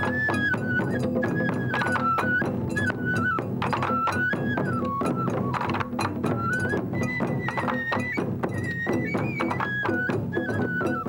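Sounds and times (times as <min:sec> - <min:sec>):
taiko drums driving rhythm: 0:00.0 - 0:11.0.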